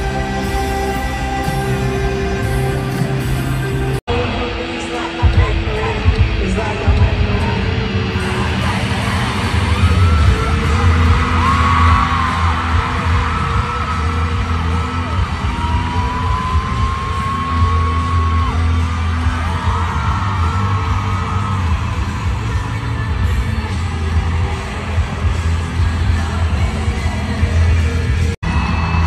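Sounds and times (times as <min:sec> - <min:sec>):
crowd yelling and singing: 0:00.0 - 0:29.0
loud live band music: 0:00.0 - 0:29.0.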